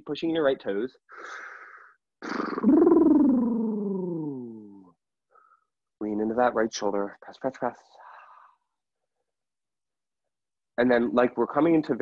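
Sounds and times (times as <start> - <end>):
person breathing in: 1.1 - 2.0.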